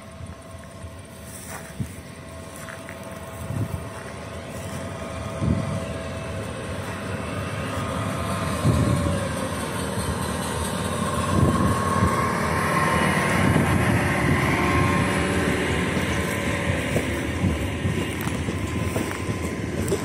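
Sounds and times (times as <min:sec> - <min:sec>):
electric locomotive motor whine: 0:00.0 - 0:20.0
wheels rumbling on rail: 0:00.0 - 0:20.0
wind buffeting microphone: 0:01.7 - 0:20.0.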